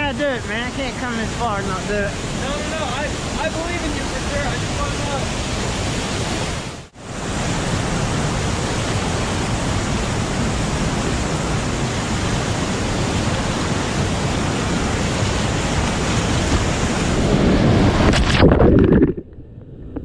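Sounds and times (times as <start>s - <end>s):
whitewater rapids rushing: 0.4s - 18.0s.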